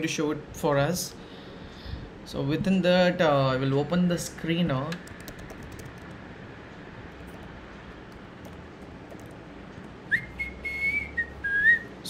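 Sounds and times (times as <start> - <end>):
faint keyboard clicks: 4.9 - 6.2, 7.1 - 10.0
person whistling a single note: 10.1 - 11.9.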